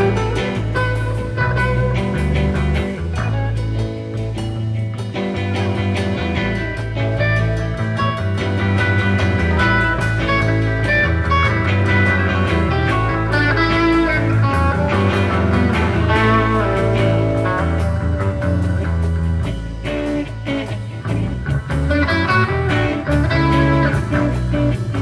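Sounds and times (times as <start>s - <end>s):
bass guitar: 0.0s - 25.0s
drums: 0.0s - 25.0s
lead electric guitar: 0.0s - 25.0s.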